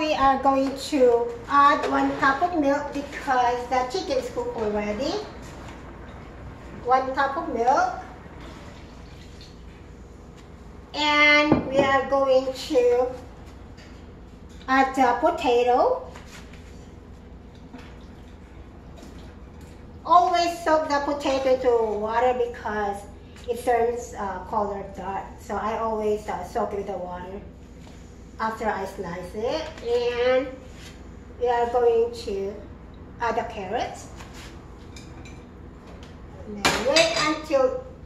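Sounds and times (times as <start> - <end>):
low steady hum: 0.0 - 38.0
soft splashes and drips: 17.5 - 20.0.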